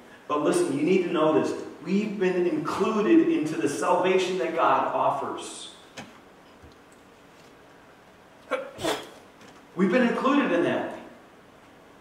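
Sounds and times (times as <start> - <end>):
person making sharp burst of sound: 8.5 - 9.2.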